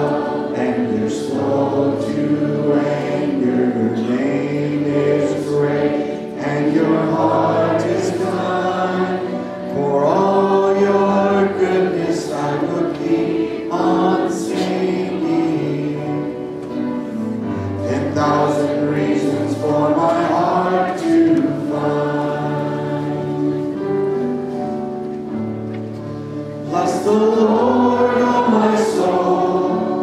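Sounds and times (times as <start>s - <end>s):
congregation singing a hymn: 0.0s - 30.0s.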